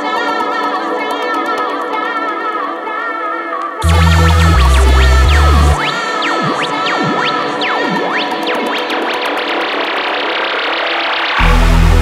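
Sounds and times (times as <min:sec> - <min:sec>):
electronic techno track: 0:00.0 - 0:12.0
synthesizer pitch sweeps: 0:03.8 - 0:12.0.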